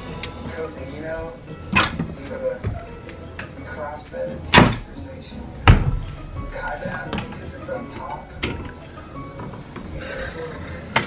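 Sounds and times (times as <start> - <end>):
wooden door knocking: 5.6 - 6.2.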